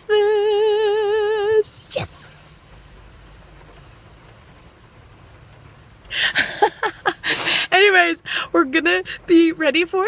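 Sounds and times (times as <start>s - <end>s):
faint hiss: 1.6s - 7.7s.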